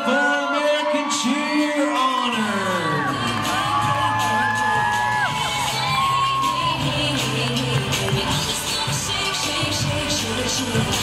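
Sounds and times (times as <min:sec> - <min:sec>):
crowd cheering and whooping: 0:00.0 - 0:09.6.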